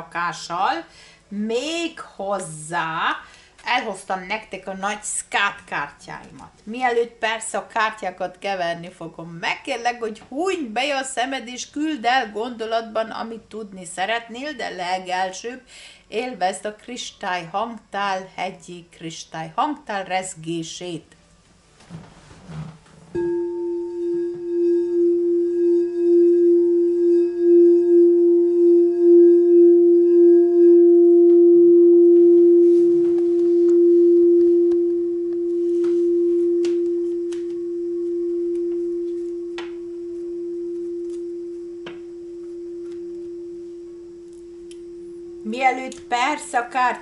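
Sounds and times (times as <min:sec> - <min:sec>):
singing bowl tone: 0:23.2 - 0:46.4.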